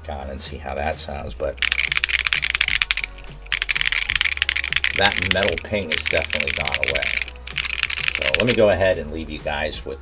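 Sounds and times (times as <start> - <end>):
fast typing on mechanical keyboard: 1.6 - 8.7.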